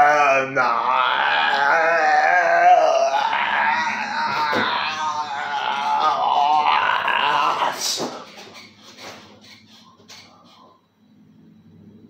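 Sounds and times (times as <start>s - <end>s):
man vocalizing wavering tones: 0.0s - 8.2s.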